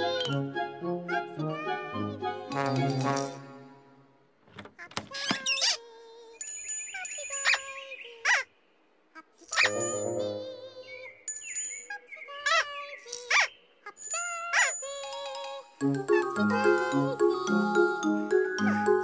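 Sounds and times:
playful children's tv music: 0:00.0 - 0:08.5, 0:09.4 - 0:19.0
high tinkling chime notes: 0:06.4 - 0:08.0, 0:09.6 - 0:12.3, 0:14.0 - 0:15.9.

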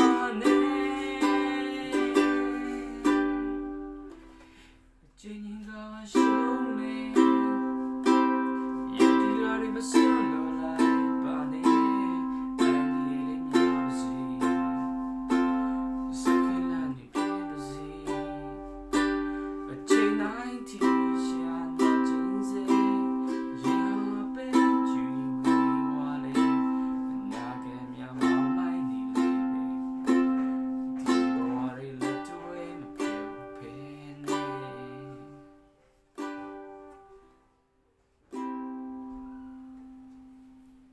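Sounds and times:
ukulele strummed chords: 0:00.0 - 0:04.7, 0:05.6 - 0:37.4, 0:38.3 - 0:40.9.

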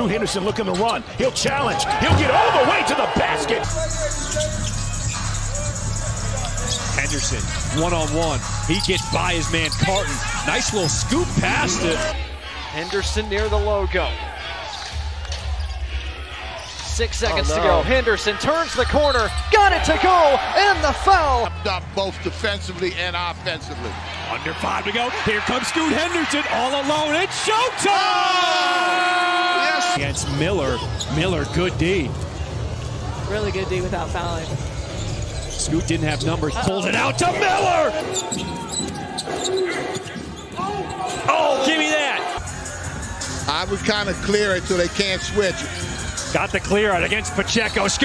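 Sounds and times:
arena crowd noise: 0:00.0 - 0:48.0.

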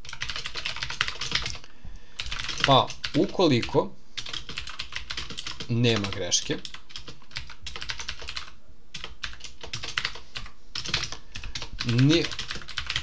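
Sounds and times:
fast typing on computer keyboard: 0:00.0 - 0:01.6, 0:02.2 - 0:13.0.

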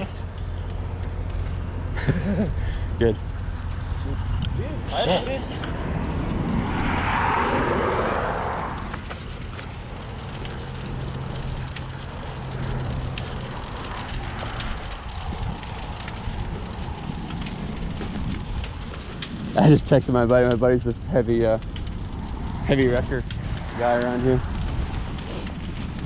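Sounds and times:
highway traffic: 0:00.0 - 0:26.0
vehicle passing: 0:00.0 - 0:26.0
wind: 0:00.0 - 0:26.0.

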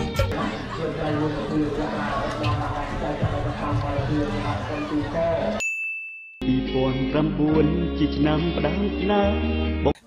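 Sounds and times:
crowd chatter: 0:00.0 - 0:05.6
pop song with man singing: 0:00.0 - 0:05.8, 0:06.4 - 0:10.0
bell-like ding: 0:05.6 - 0:06.5.

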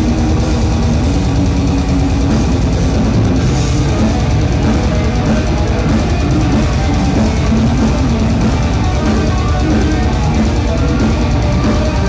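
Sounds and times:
bass guitar: 0:00.0 - 0:12.0
distorted electric guitar riff: 0:00.0 - 0:12.0
fast dense drumming: 0:00.0 - 0:12.0.

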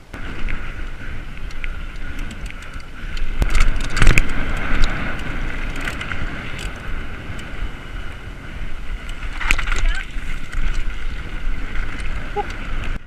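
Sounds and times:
bike rattling over bumps: 0:00.0 - 0:13.0
wind on camera microphone: 0:00.0 - 0:13.0.

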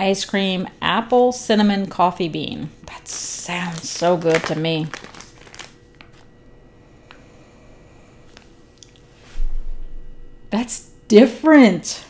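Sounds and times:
faint steady hum: 0:00.0 - 0:12.0
plastic bag crinkling: 0:03.0 - 0:06.3.

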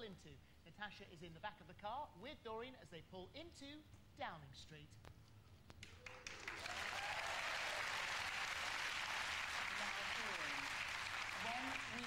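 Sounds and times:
audience applause: 0:06.0 - 0:12.0.

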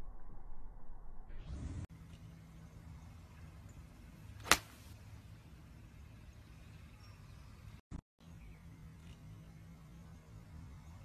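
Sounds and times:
golf club striking ball: 0:04.4 - 0:04.8
golf club swish: 0:04.4 - 0:05.0.

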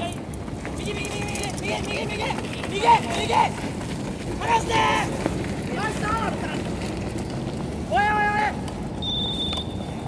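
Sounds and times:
people shouting: 0:01.1 - 0:03.6, 0:04.4 - 0:05.2, 0:07.9 - 0:08.6.

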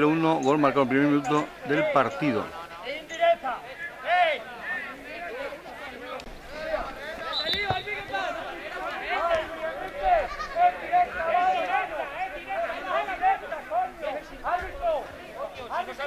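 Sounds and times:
young players shouting: 0:03.3 - 0:16.0.

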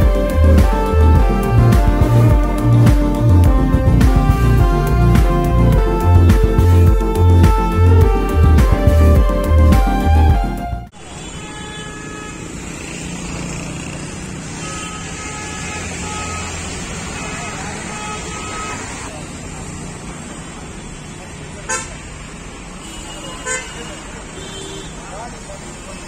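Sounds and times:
hum of passing vehicles: 0:11.8 - 0:22.8.

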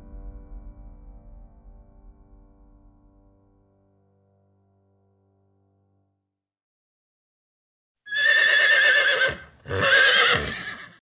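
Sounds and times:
horse whinnying: 0:08.1 - 0:11.0.

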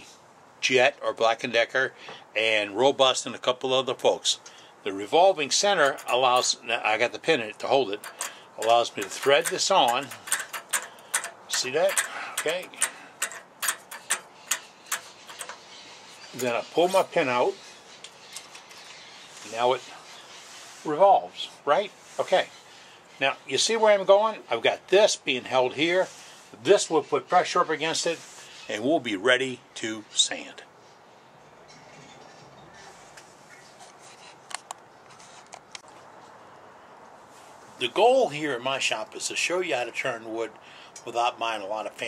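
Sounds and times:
mechanical ticking: 0:08.0 - 0:16.4.

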